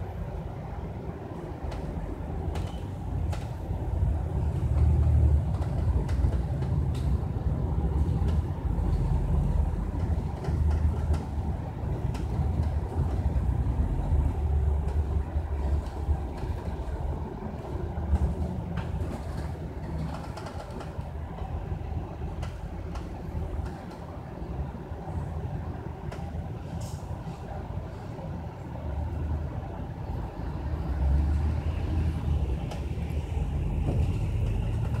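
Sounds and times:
bus engine and road rumble: 0.0s - 35.0s.

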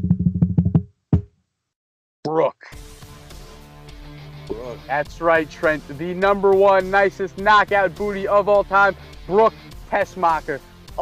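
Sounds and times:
drum roll: 0.0s - 1.3s.

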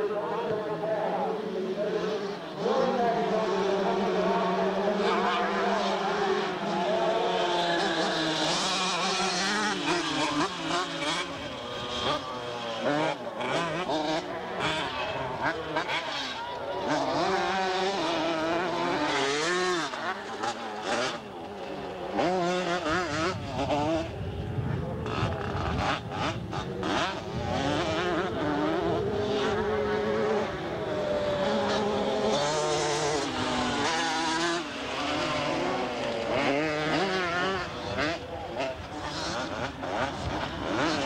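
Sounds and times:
motocross bikes revving: 0.0s - 41.0s.

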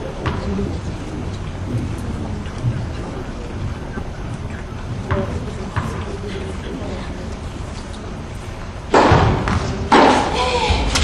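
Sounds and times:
racket hitting tennis ball: 8.9s - 10.4s.

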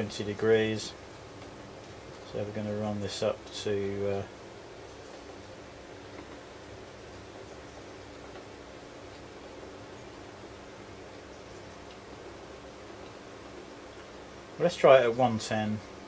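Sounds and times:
low steady hum: 0.0s - 16.0s.

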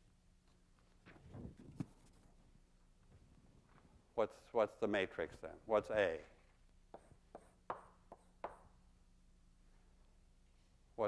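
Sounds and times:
chalk tapping on blackboard: 6.9s - 8.7s.

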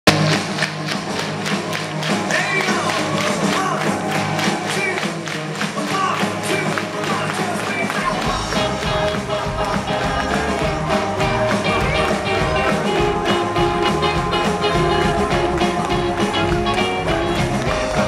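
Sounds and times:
rock and roll band playing: 0.1s - 18.0s
person singing: 5.9s - 18.0s.

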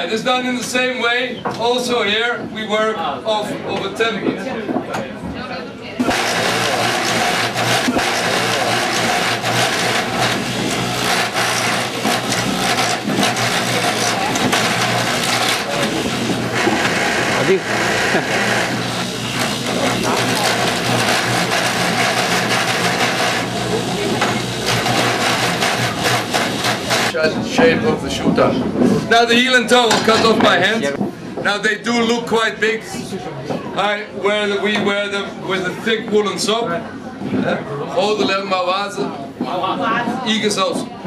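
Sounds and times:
lathe knives cutting wood: 6.0s - 27.2s
lathe motor hum: 6.0s - 27.2s.

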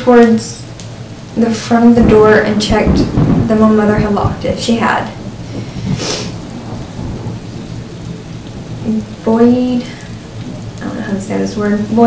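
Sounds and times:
steady rain: 0.0s - 12.0s
thunder rumbling: 0.0s - 12.0s
short hiss: 5.5s - 6.4s.

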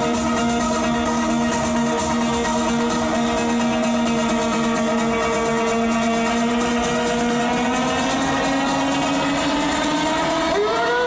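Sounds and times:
droning synth chord: 0.0s - 11.0s.

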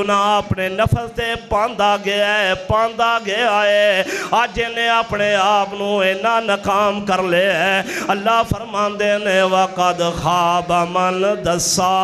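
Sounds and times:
man chanting melodically: 0.0s - 12.0s.

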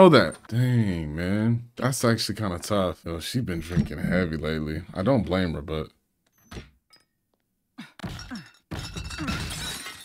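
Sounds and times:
glass shattering: 8.1s - 10.0s.

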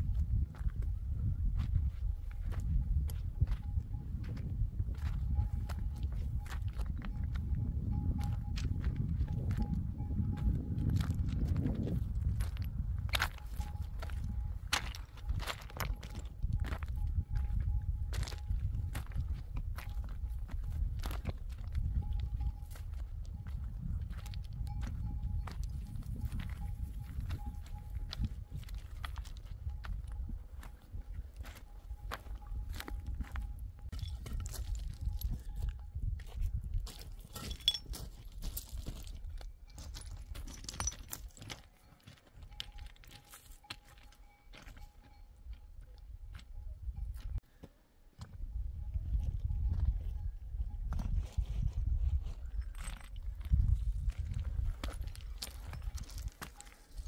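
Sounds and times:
wind rumble on microphone: 0.0s - 41.5s, 44.6s - 47.4s, 48.2s - 57.0s
footsteps on gravel: 0.1s - 45.2s, 51.0s - 57.0s.

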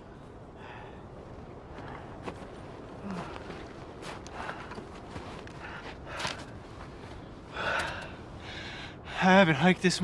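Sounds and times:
man breathing hard: 0.3s - 1.2s, 3.0s - 6.6s, 7.4s - 9.2s.

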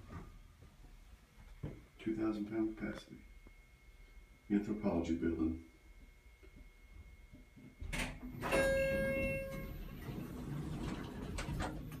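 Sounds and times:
elevator arrival chime: 6.3s - 11.9s
elevator clunk: 7.8s - 12.0s
elevator doors sliding open: 7.9s - 12.0s.

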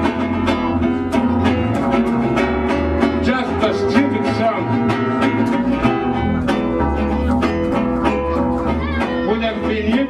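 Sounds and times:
deep double bass notes: 0.0s - 10.0s
guitar strummed: 0.0s - 10.0s.

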